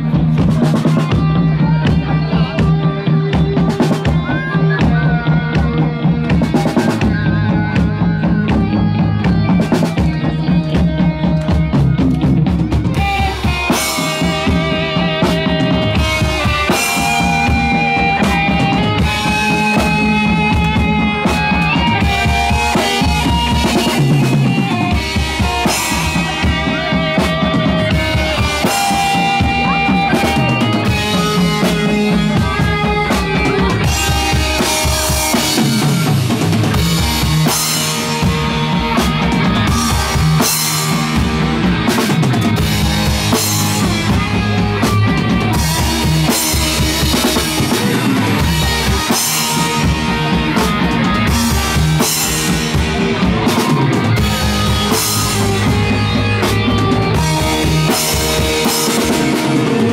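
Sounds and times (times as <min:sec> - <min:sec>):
drum kit with cymbals: 0:00.0 - 0:59.9
electric guitar: 0:00.0 - 0:59.9
live rock band playing: 0:00.0 - 0:59.9.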